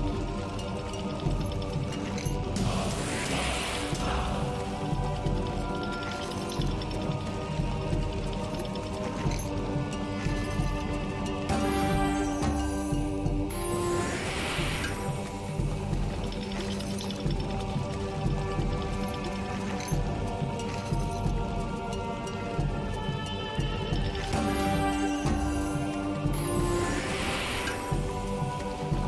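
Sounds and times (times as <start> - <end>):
slot game background music: 0.0 - 29.0.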